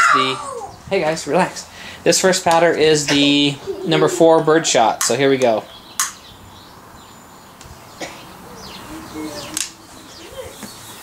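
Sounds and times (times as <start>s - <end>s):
birds chirping: 0.0s - 11.0s
steady outdoor hiss: 0.0s - 11.0s.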